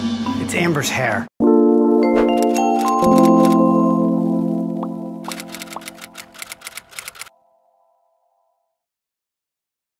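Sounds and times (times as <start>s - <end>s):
held music chord: 1.4s - 5.3s
outro music: 1.4s - 7.9s
typewriter-style clicking: 2.3s - 3.6s, 5.3s - 7.3s.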